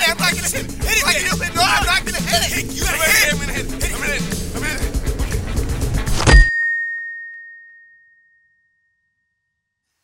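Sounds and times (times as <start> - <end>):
music: 0.0 - 6.5
high ringing tone: 6.3 - 9.6.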